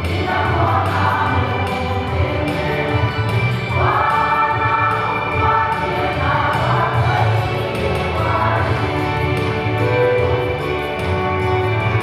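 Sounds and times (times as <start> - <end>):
women's choir singing: 0.0 - 10.0.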